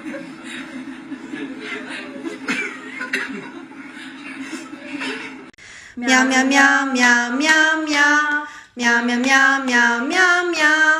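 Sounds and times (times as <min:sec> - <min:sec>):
people chuckling and laughing: 0:00.0 - 0:05.6.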